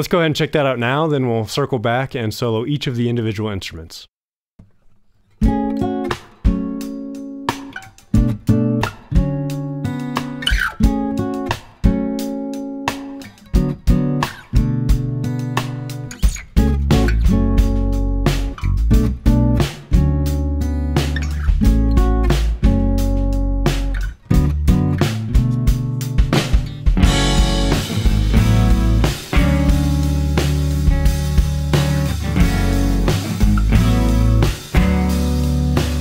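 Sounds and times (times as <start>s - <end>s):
acoustic guitar strumming: 5.3s - 36.0s
deep low notes: 27.0s - 35.0s.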